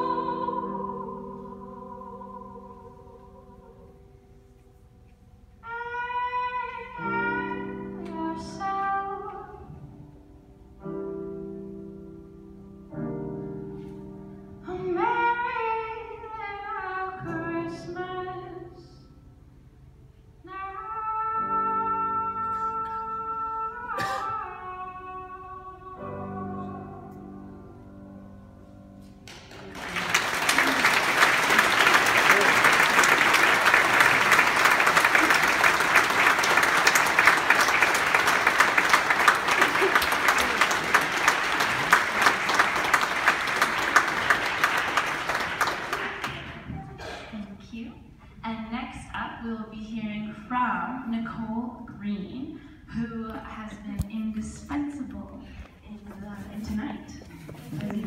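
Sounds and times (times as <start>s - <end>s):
large audience applauding: 29.3s - 46.9s.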